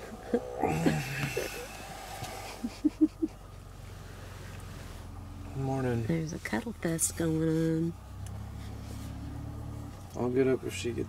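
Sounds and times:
short low vocal sounds: 0.0s - 2.7s.

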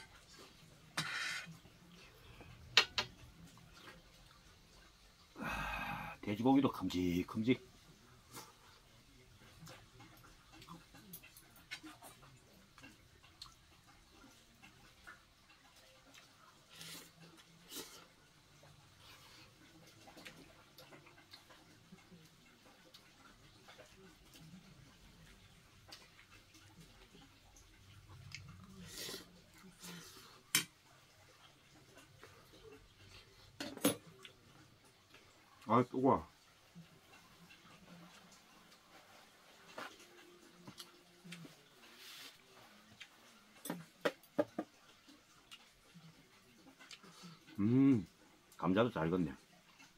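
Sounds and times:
soft chewing: 0.0s - 6.2s, 6.8s - 49.9s.

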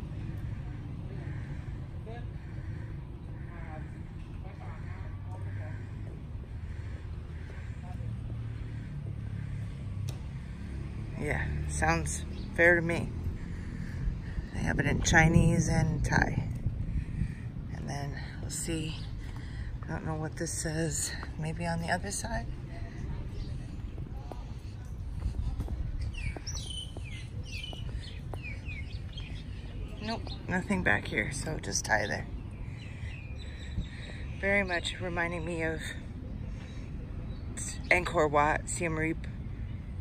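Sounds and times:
engine humming: 0.0s - 40.0s
steady low rumble: 0.0s - 40.0s
birds chirping downward: 21.8s - 38.2s.

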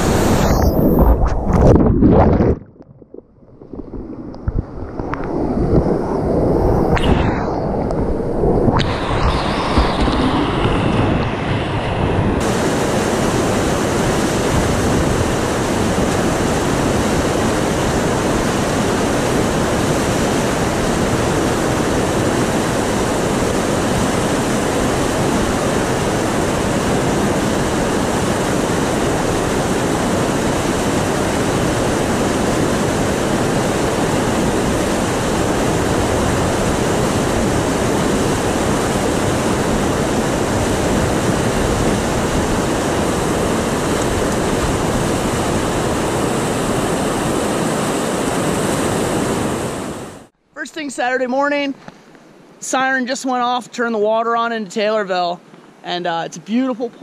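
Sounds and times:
whitewater rapids rushing: 8.8s - 50.3s.

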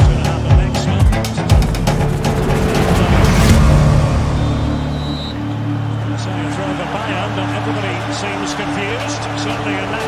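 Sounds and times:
music with heavy drum beat: 0.0s - 5.2s.

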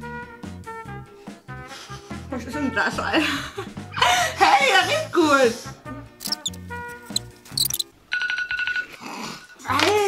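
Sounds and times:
background music: 0.0s - 8.5s.

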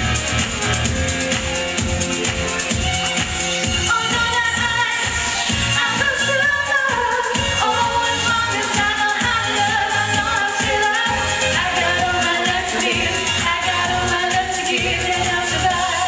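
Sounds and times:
backing music with steady beat: 0.0s - 16.0s
man and woman singing: 7.6s - 16.0s.

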